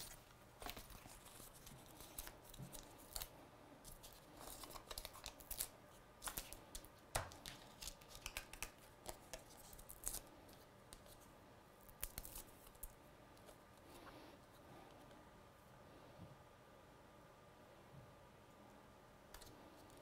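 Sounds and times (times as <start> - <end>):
paper clicks and crinkles: 0.0 - 11.2.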